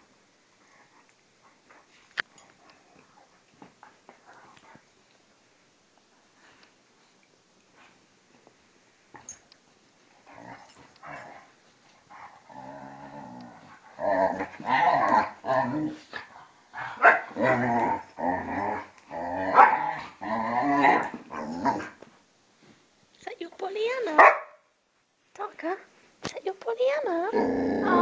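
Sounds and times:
dogs growling in play: 10.1s - 22.0s, 27.3s - 28.0s.

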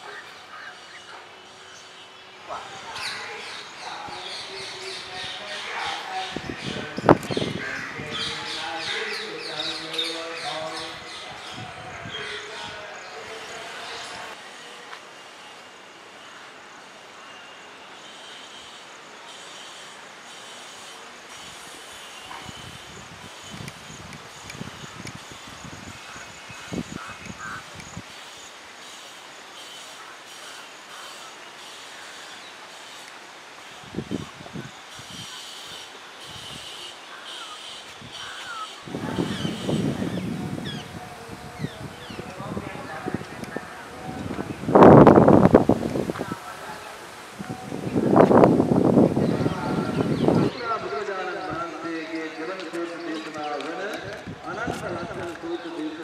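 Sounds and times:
steady hiss: 0.0s - 56.0s
wind rumble on microphone: 5.2s - 8.7s, 10.8s - 12.9s, 22.3s - 28.2s, 33.8s - 35.3s, 37.9s - 50.9s, 54.0s - 55.5s.

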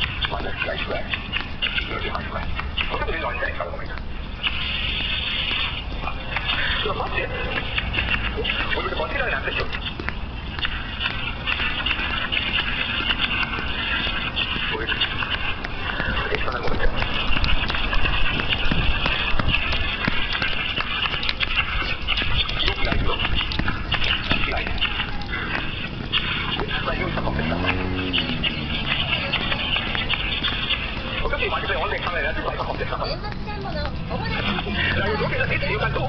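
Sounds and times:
footsteps on tiled floor: 0.0s - 36.0s
indistinct voices: 0.0s - 36.0s.

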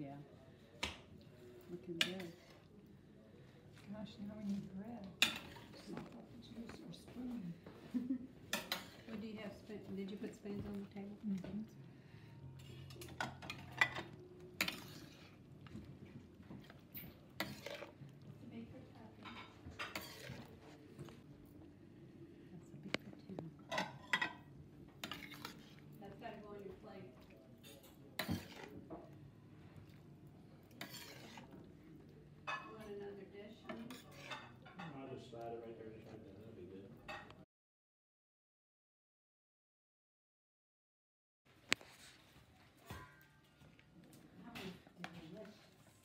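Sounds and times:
metal spoon scraping a pan: 1.9s - 2.6s, 5.1s - 6.0s, 8.5s - 9.3s, 12.5s - 15.4s, 16.5s - 18.1s, 19.2s - 20.8s, 23.7s - 25.9s, 27.6s - 28.8s, 30.7s - 31.6s, 33.6s - 34.9s.

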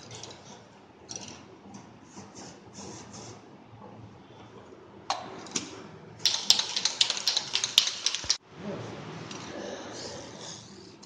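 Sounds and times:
aerosol can rattling when shaken: 6.2s - 8.4s.

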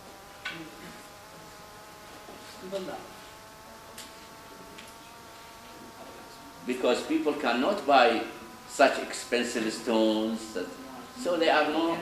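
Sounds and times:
low steady buzz: 0.0s - 12.0s.

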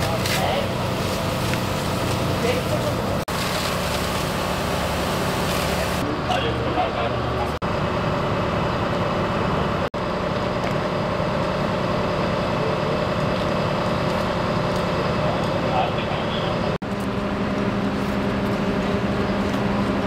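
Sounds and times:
truck engines humming: 0.0s - 20.0s.

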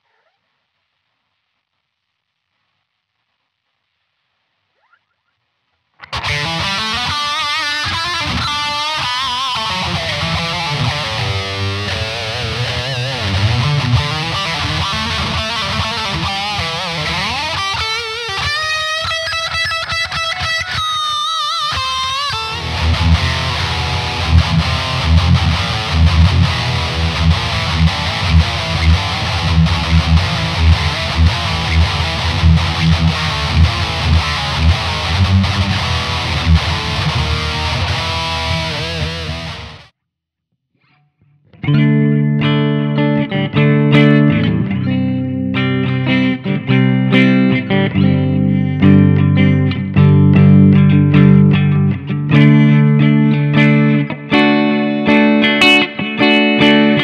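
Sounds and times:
distorted electric guitar: 5.9s - 39.9s, 41.6s - 57.0s
clear picked guitar notes: 6.0s - 39.8s, 41.5s - 57.0s.

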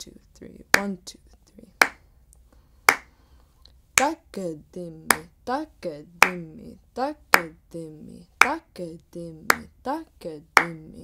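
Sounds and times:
woman reciting drum syllables: 0.0s - 2.0s, 4.0s - 11.0s
sharp hand clap: 1.8s - 2.0s, 2.9s - 3.2s.

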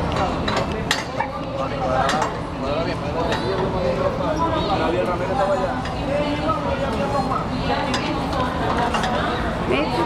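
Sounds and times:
crowd talking: 0.0s - 10.0s.

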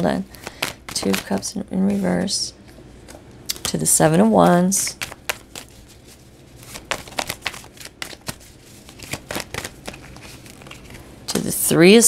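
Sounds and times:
cards flicking and tapping: 0.3s - 1.4s, 4.9s - 5.7s, 6.7s - 11.0s.

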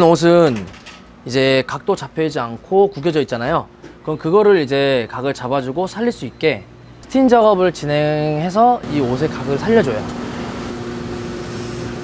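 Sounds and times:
steam equipment hum and hiss: 4.8s - 12.0s.

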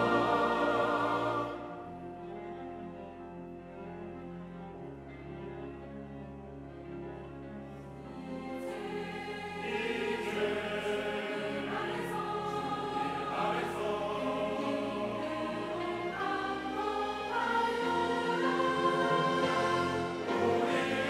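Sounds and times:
choir singing: 0.0s - 3.2s, 8.0s - 21.0s
orchestral strings and woodwinds: 0.0s - 21.0s.

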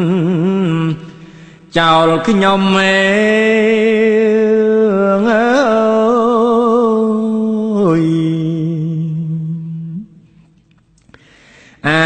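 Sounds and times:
man chanting through microphone: 0.0s - 10.1s, 11.8s - 12.0s.

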